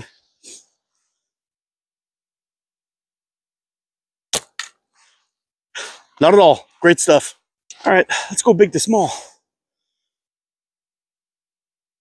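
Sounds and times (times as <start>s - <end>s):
slingshot release crack: 4.3s - 4.8s.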